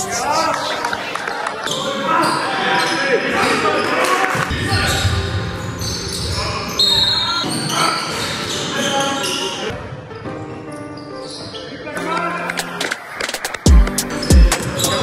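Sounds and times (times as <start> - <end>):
players' voices: 0.0 - 15.0
backing music with held chords: 13.7 - 15.0.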